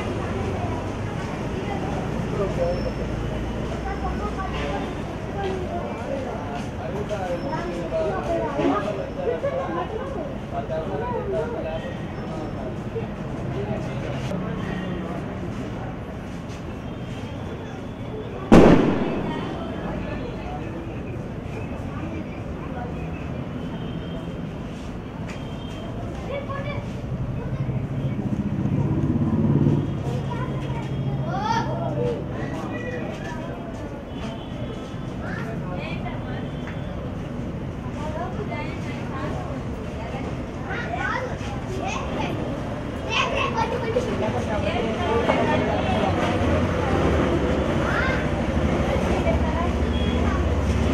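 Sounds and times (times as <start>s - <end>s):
murmur of voices: 0.0s - 50.9s
people chattering: 0.0s - 50.9s
children's voices: 3.7s - 5.9s, 26.2s - 28.1s, 30.0s - 33.4s, 37.9s - 50.9s
firecracker bang: 18.5s - 20.0s.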